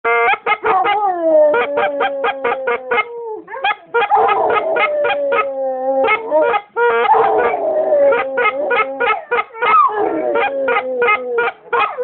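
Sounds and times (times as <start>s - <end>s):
dog howling: 0.6s - 12.0s.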